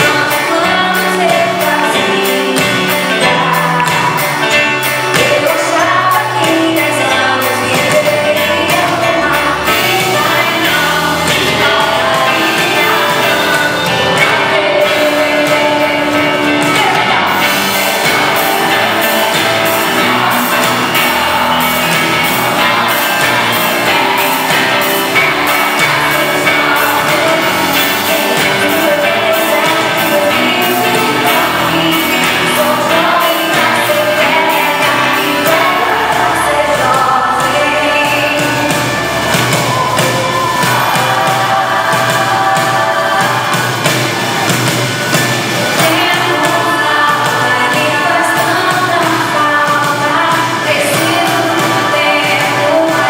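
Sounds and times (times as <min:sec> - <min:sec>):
live pop-rock band with singing: 0:00.0 - 0:53.0
steady drum beat: 0:00.0 - 0:53.0.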